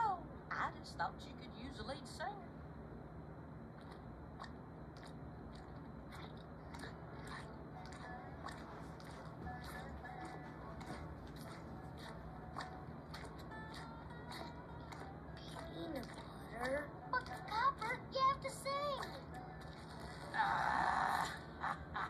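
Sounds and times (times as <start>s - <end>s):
quiet background music: 0.0s - 22.0s
small irregular clicks and smacks: 3.8s - 20.3s.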